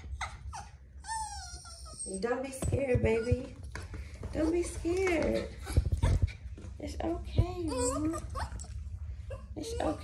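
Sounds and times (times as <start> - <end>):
small dog whining: 0.0 - 2.2, 7.7 - 10.0.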